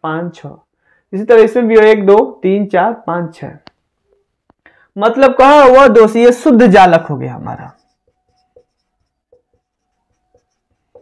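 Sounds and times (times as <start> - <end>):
marker writing on whiteboard: 7.4 - 11.0.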